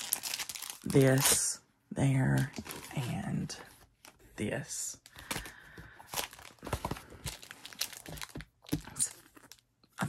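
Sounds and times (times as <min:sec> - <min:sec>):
plastic bag crinkling: 0:00.0 - 0:01.6, 0:05.0 - 0:09.6.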